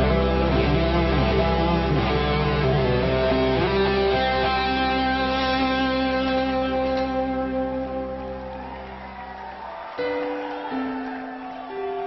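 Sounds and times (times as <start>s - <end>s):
live rock band: 0.0s - 11.4s
electric guitar sustained notes: 0.0s - 12.0s.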